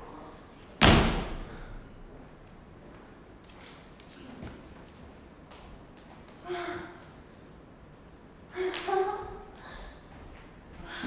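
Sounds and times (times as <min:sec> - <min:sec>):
loud slam: 0:00.8 - 0:01.9.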